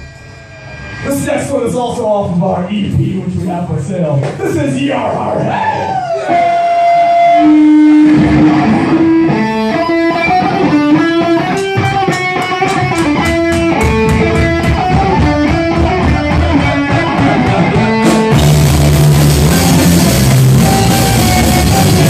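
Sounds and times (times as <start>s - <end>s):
full metal band with drums: 0.0s - 22.0s
electric guitar melodic line: 6.1s - 22.0s.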